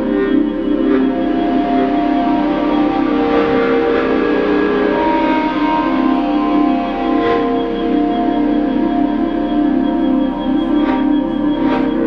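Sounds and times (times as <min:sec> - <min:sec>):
electronic ambient drone music: 0:00.0 - 0:12.0.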